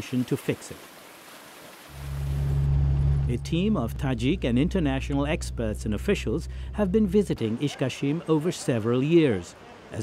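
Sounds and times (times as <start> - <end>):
water running in canal: 0.0 - 8.3
car engine drone from cabin: 1.9 - 7.4.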